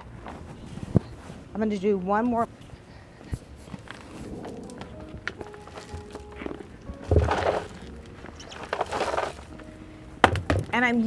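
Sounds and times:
mulch pouring from bucket: 8.5 - 9.5.

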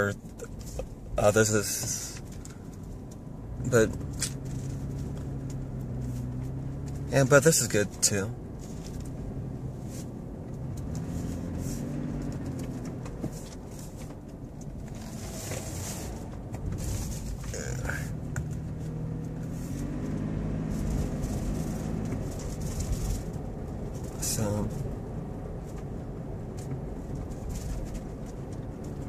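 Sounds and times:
road noise: 0.0 - 29.0
car engine accelerating: 0.2 - 29.0.

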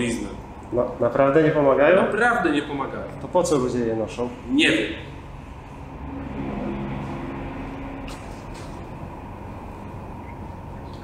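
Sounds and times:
faint hum: 0.0 - 11.0
low rumbling: 3.6 - 11.0.

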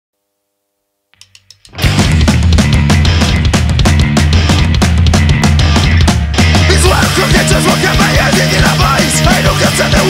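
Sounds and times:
punk band playing: 1.6 - 10.0.

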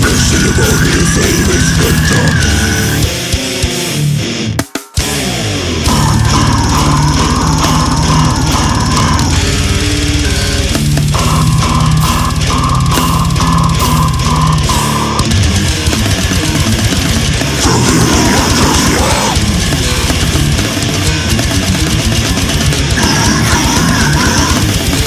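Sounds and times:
very fast drumming: 0.0 - 3.8, 5.8 - 25.0
distorted electric guitar riffing: 0.0 - 25.0.

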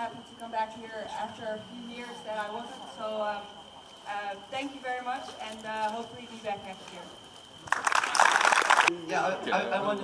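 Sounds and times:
applause: 7.6 - 8.9.

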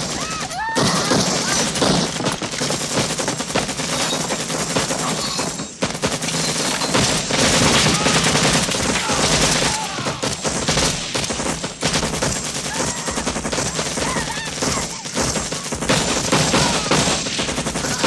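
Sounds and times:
machine gun firing: 0.0 - 18.0
rifles firing in bursts: 0.0 - 18.0.

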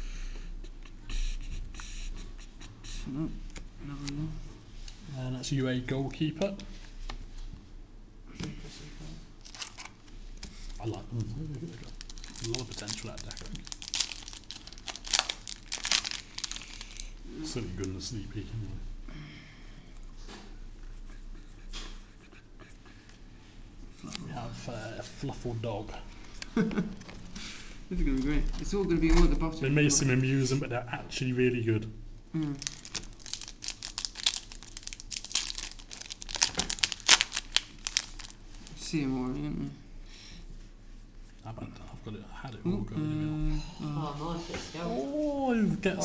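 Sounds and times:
foil wrapper crinkling: 9.4 - 9.9, 11.8 - 17.1, 32.6 - 38.8.

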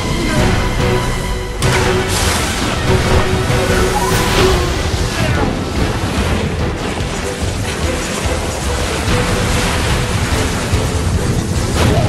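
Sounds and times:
rushing water noise: 0.0 - 12.0
soundtrack music: 0.0 - 12.0.

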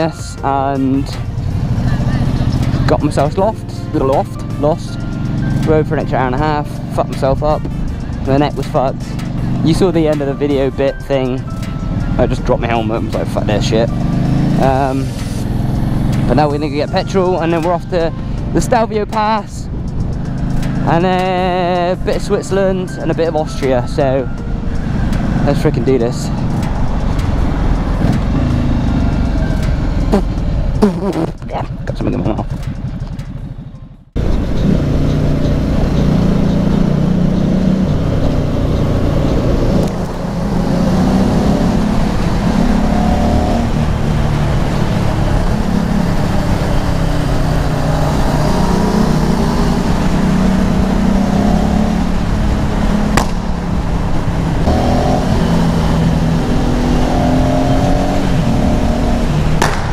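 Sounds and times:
motorcycle engine running: 0.0 - 59.9.

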